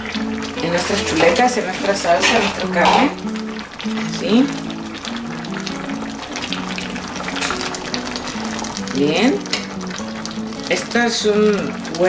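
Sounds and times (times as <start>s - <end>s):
music with held low notes: 0.0s - 12.0s
salsa bubbling in a pot: 0.0s - 12.0s
spoon stirring in a pot: 0.6s - 3.3s.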